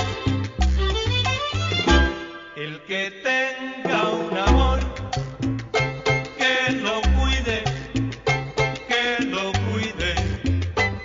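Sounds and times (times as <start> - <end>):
salsa music: 0.0 - 11.0.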